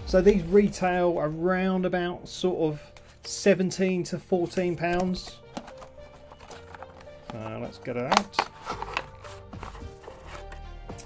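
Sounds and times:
soft background music: 0.0 - 11.0
packaging clicks and scrapes: 4.4 - 11.0.

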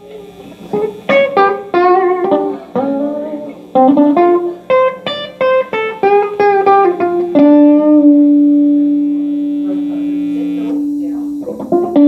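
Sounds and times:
electric guitar notes ringing: 0.0 - 12.0.

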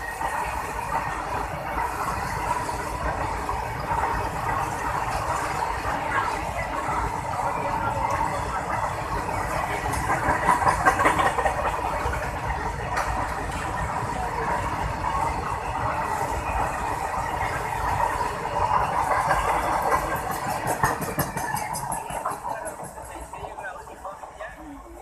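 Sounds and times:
freight train passing: 0.0 - 25.0.

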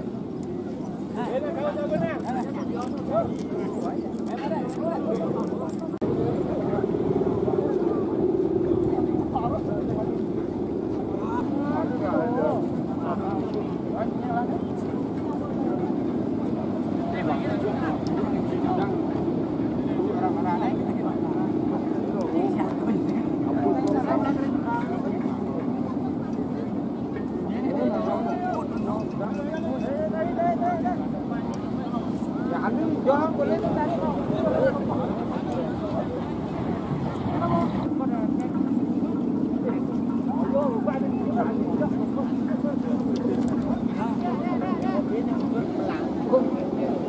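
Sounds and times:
kite hummer droning: 0.0 - 47.0.

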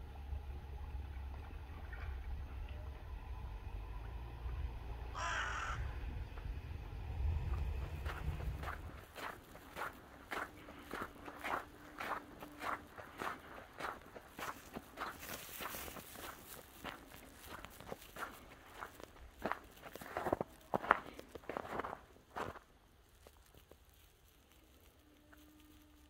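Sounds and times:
footsteps on snow and slush: 7.5 - 26.0.

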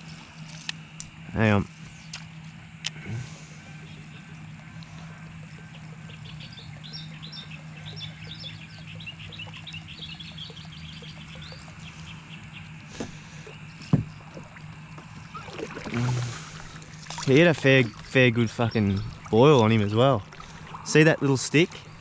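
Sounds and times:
birds chirping: 0.0 - 22.0
steady low hum: 0.0 - 22.0.

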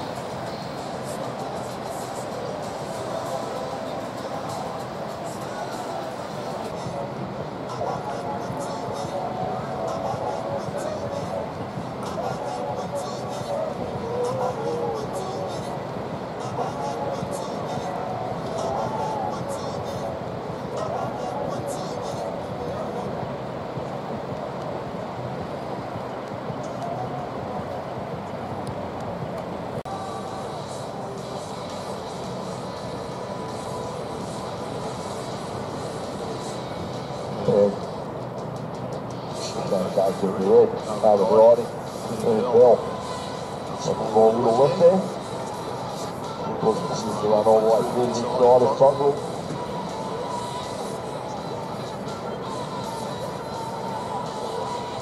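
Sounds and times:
distant voices: 0.0 - 55.0
ocean surf rushing: 0.0 - 55.0.

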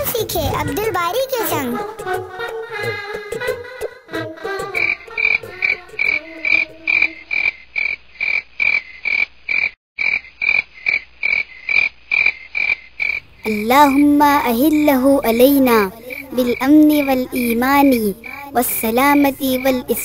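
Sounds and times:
frogs croaking: 4.2 - 20.0.

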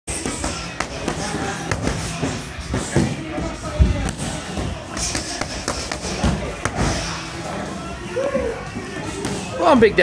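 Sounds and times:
background music: 0.1 - 10.0
boxing gloves smacking pads: 4.9 - 7.0.

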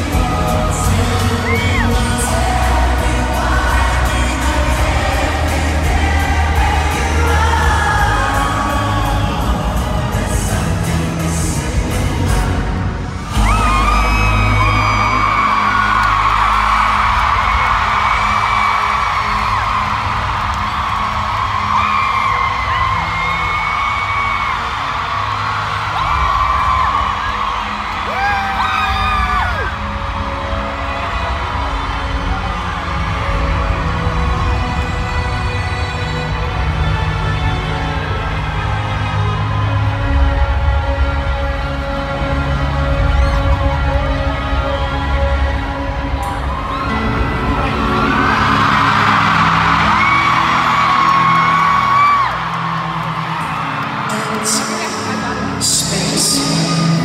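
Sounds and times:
crowd screaming and cheering: 0.0 - 57.0
dramatic instrumental concert music: 0.0 - 57.0.

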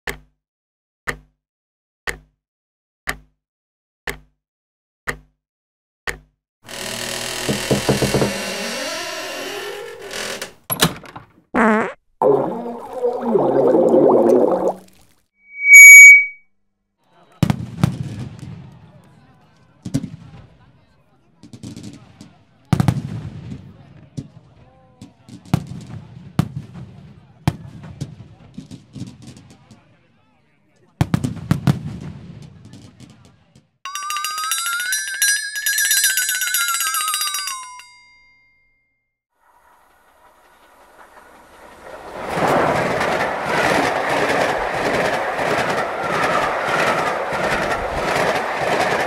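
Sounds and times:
noisy warbling sound effects: 12.2 - 14.8, 15.5 - 16.4
loud short beep: 15.4 - 16.4
fireworks bangs and crackle: 17.4 - 19.0, 19.8 - 20.6, 21.4 - 29.9, 31.0 - 33.6, 40.4 - 49.0.

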